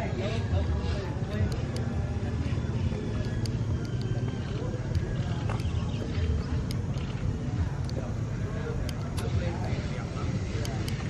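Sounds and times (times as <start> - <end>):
people talking indistinctly: 0.0 - 11.0
sharp clicks: 1.4 - 2.0, 3.0 - 8.1, 8.8 - 9.3.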